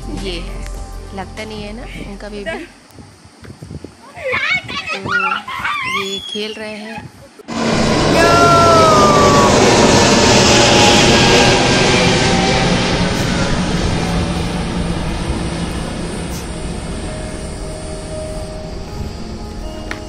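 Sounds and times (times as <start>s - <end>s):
jet airliner passing overhead: 7.5s - 20.0s.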